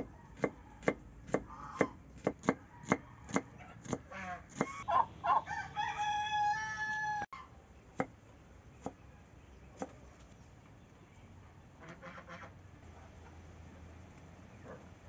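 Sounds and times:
rooster crowing: 0:00.0 - 0:00.9, 0:02.6 - 0:03.6, 0:04.9 - 0:07.4
knife chopping onion on wooden board: 0:00.0 - 0:04.8.

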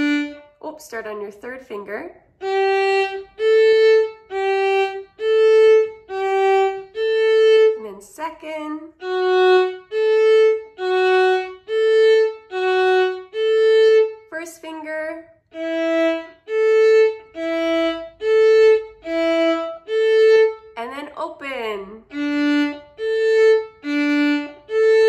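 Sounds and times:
violin bowed notes: 0:00.0 - 0:25.0.

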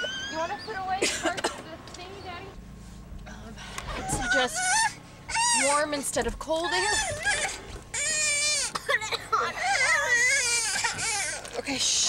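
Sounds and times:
young child crying: 0:06.8 - 0:11.5.

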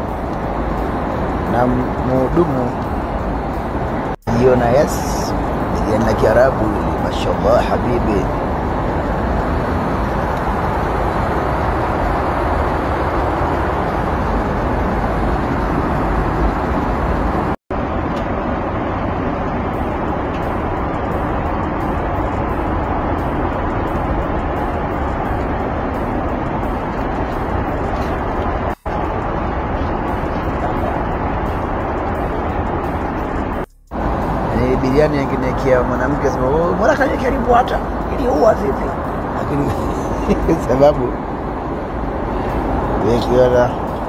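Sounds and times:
airliner cabin noise: 0:00.0 - 0:44.0.

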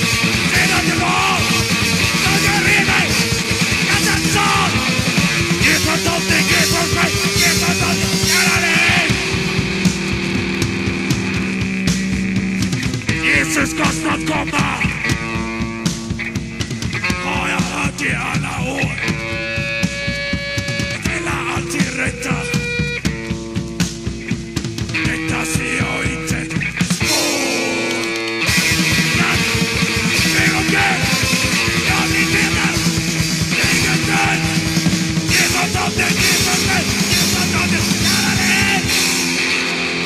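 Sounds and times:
punk rock band playing: 0:00.0 - 0:40.0
electric guitar chord ringing: 0:27.0 - 0:40.0.

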